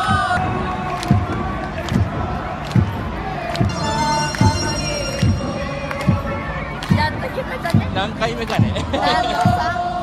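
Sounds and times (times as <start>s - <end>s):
stadium crowd chanting: 0.0s - 7.8s, 9.0s - 10.0s
drum beating steady rhythm: 0.0s - 10.0s.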